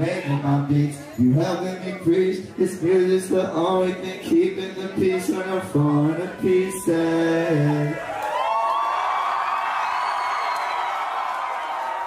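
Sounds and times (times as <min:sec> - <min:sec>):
crowd cheering and screaming: 0:05.3 - 0:12.0.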